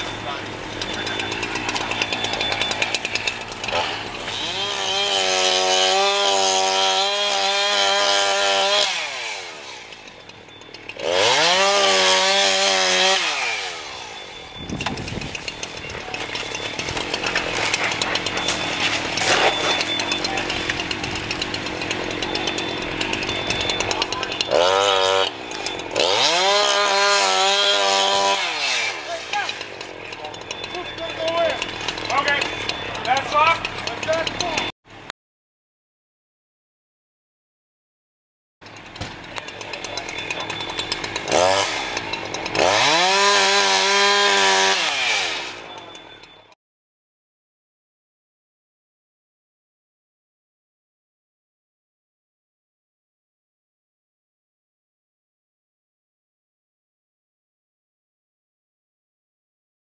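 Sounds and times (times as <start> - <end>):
power saw cutting roof: 0.0 - 34.7, 38.6 - 46.3.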